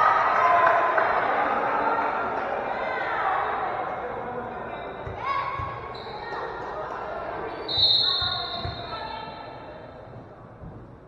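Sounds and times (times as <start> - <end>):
referee's whistle: 5.9 - 6.2, 7.7 - 9.4.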